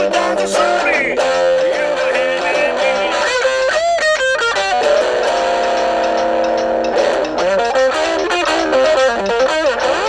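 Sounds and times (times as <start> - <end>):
electric guitar blues shuffle: 0.0 - 10.0.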